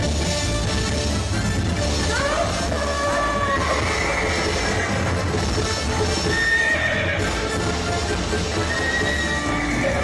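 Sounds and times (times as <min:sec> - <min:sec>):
theatrical backing music: 0:00.0 - 0:10.0
horse neighing: 0:03.4 - 0:05.4, 0:06.2 - 0:07.4, 0:08.6 - 0:10.0
hoofbeats: 0:03.5 - 0:10.0.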